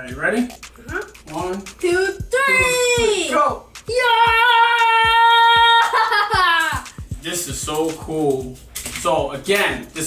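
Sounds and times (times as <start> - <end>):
child cheering: 2.3 - 3.3, 3.9 - 6.9.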